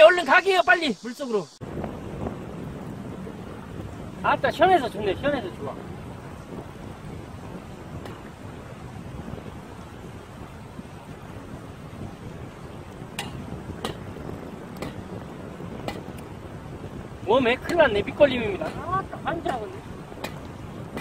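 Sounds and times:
river water over rapids: 0:00.0 - 0:21.0
wind on microphone: 0:01.5 - 0:21.0.

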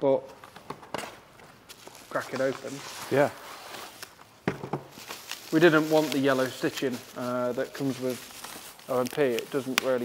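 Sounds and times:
plastic bag rustling: 0:00.4 - 0:10.0.

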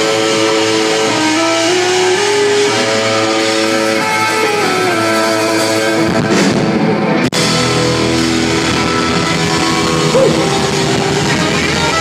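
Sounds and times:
loud live rock band: 0:00.0 - 0:12.0.

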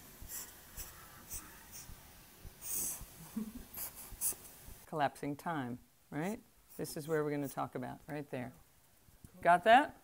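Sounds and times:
marker pen scratching on paper: 0:00.2 - 0:03.1, 0:03.8 - 0:04.5.

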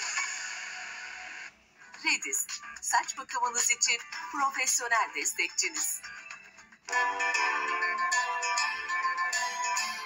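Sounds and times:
jingle music through tv speaker: 0:00.0 - 0:10.0.

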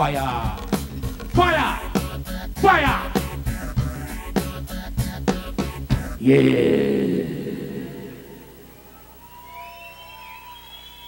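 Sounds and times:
faint high whistle-like tones: 0:08.4 - 0:11.0.

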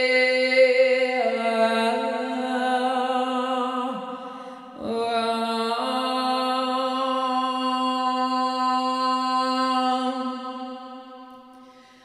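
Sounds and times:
woman singing a long vowel: 0:00.0 - 0:11.1.

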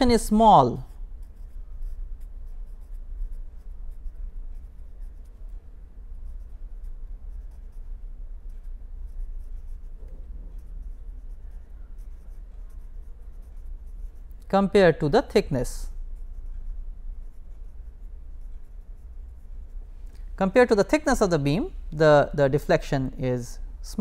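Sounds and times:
marker pen scratching on paper: 0:00.0 - 0:19.8
steady low hum: 0:00.0 - 0:24.0.

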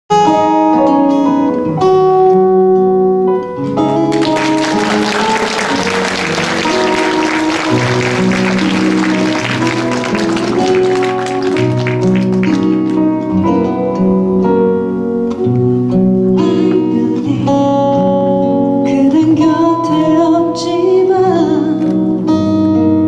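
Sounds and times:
audience applause: 0:04.1 - 0:13.2
live band playing: 0:04.1 - 0:13.4.

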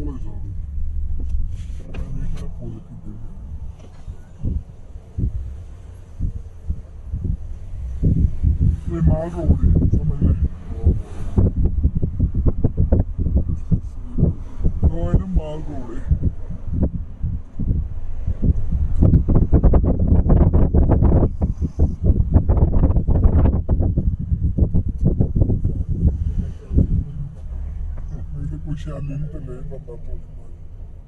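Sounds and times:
car engine and road rumble: 0:00.0 - 0:31.0
voices talking in a car: 0:00.0 - 0:31.0.

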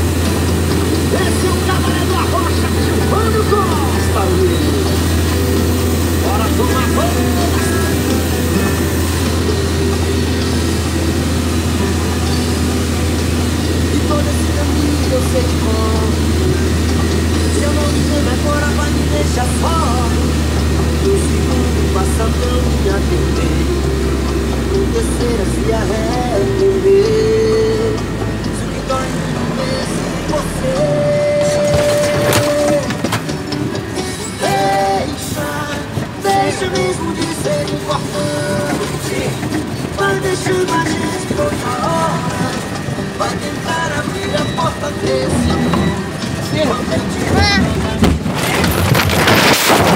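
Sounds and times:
radio music: 0:00.0 - 0:48.8
road noise: 0:00.0 - 0:49.9
truck engine humming: 0:00.0 - 0:49.9
knocking and rattling in truck cab: 0:30.8 - 0:34.1.

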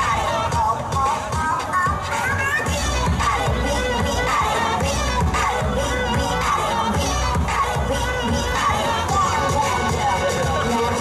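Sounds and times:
crowd shouting and cheering: 0:00.0 - 0:11.0
dance music with steady beat: 0:00.0 - 0:11.0.

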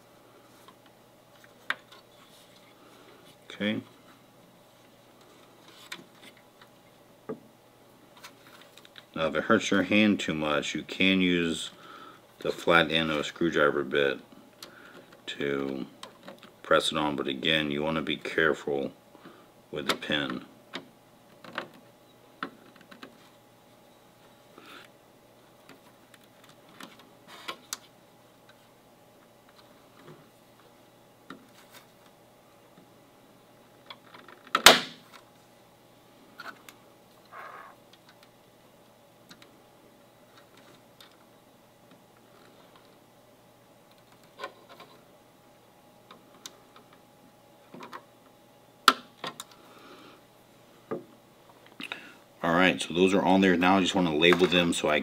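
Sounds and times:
faint room hum: 0:00.0 - 0:55.0.

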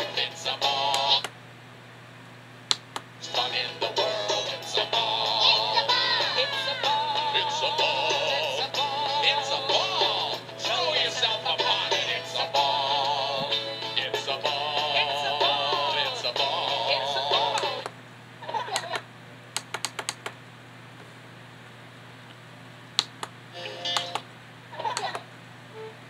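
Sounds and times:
music with warbling sung melody: 0:00.0 - 0:01.3, 0:03.2 - 0:17.9
steady low hum: 0:00.0 - 0:26.0.

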